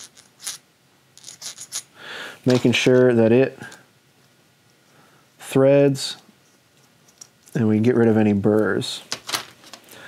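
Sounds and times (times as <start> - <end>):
metal threads scraping: 0.0 - 3.1.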